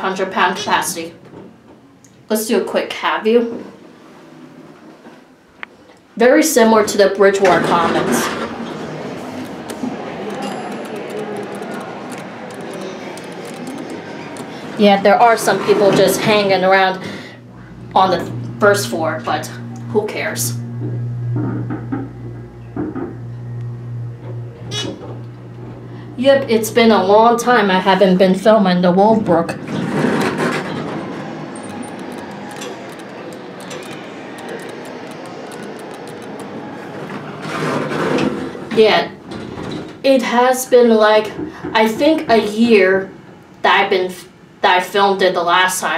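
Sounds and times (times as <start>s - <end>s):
elevator hum and rumble: 6.2s - 45.9s.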